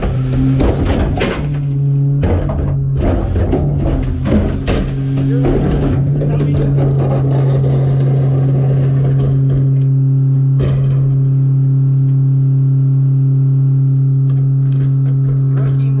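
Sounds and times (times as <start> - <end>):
garbage truck engine droning: 0.0 - 16.0.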